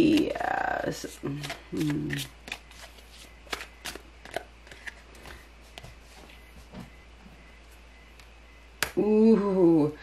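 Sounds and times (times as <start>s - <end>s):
cards clicking: 1.3s - 5.4s.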